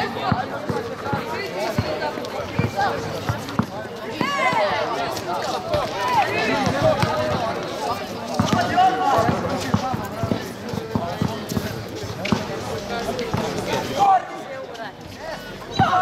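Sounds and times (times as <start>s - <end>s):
basketball bouncing on asphalt: 0.2s - 4.8s, 5.7s - 7.6s, 8.3s - 12.6s, 13.2s - 13.6s.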